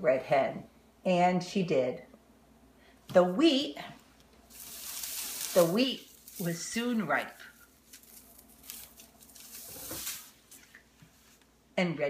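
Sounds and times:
faint rustling and handling: 3.8s - 11.6s.

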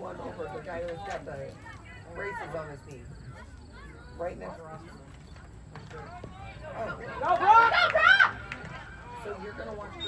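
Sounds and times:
spectators talking and shouting: 0.0s - 10.0s.

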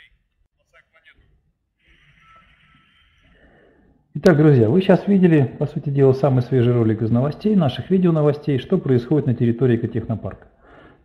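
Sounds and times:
faint breathing into microphone: 3.2s - 4.1s, 10.5s - 11.0s.

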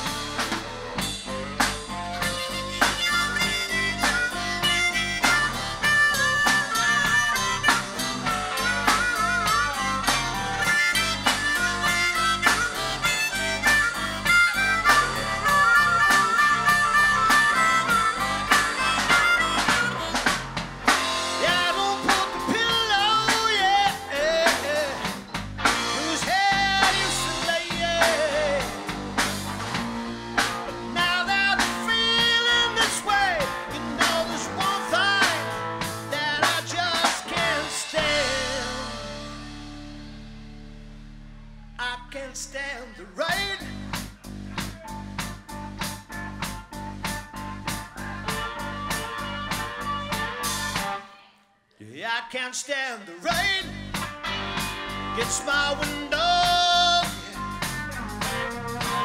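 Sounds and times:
harmonica solo: 0.0s - 39.7s, 44.9s - 51.3s, 54.0s - 59.0s
drum kit: 0.0s - 41.9s, 43.2s - 51.1s, 53.3s - 59.0s
electric guitar: 0.0s - 42.0s, 44.8s - 51.2s, 53.3s - 59.0s
bass guitar: 0.0s - 51.1s, 53.3s - 59.0s.

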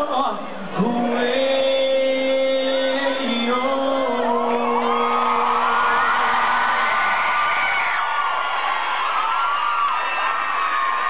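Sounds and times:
crowd cheering and screaming: 3.9s - 11.0s.

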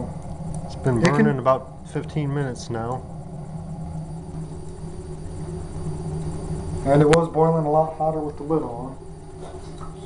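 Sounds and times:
steady hum: 0.0s - 10.0s
wood fire rumbling: 0.0s - 10.0s.

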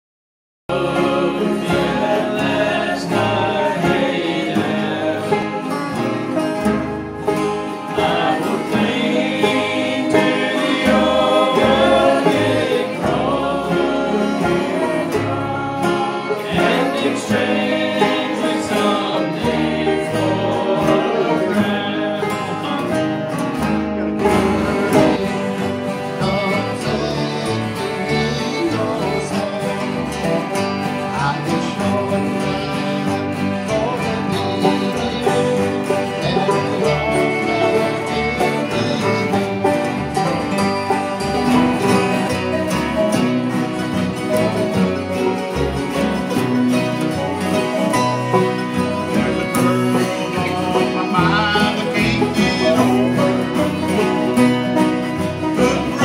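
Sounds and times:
bluegrass string band playing: 0.7s - 56.0s
person singing: 7.8s - 23.2s, 24.6s - 39.7s, 47.0s - 56.0s.

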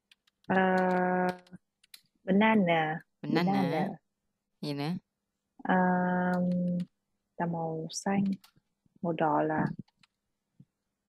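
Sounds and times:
keyboard typing clicks: 0.0s - 2.1s
woman saying uhh: 3.3s - 3.9s.

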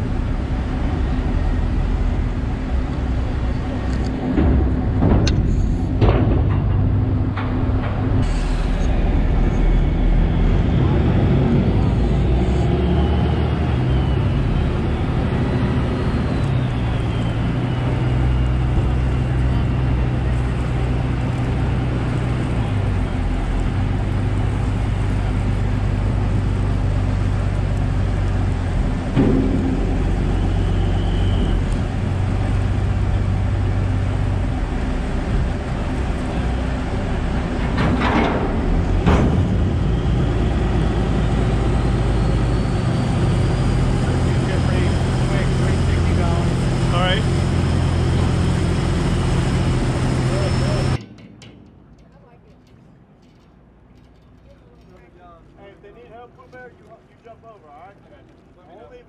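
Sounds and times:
quiet outdoor ambience: 11.8s - 59.0s
boat engine running: 14.9s - 51.0s.

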